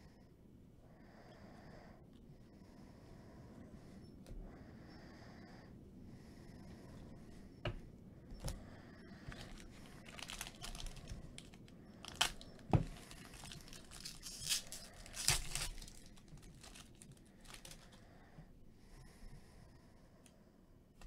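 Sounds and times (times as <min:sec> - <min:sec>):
cards rustling: 0:09.3 - 0:18.0
foil wrapper crinkling and tearing: 0:09.3 - 0:18.0.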